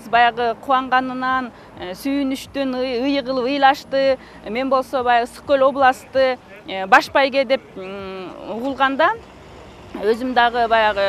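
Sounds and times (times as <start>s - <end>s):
woman speaking: 0.0s - 9.2s, 10.0s - 11.0s.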